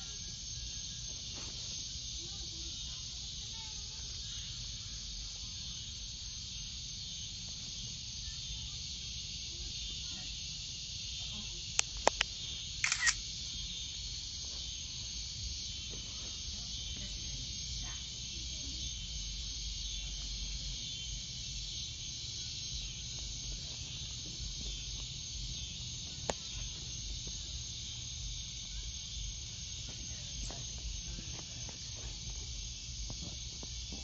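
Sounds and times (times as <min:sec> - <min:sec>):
high-pitched insect chorus: 0:00.0 - 0:34.0
sharp click: 0:11.8 - 0:13.2.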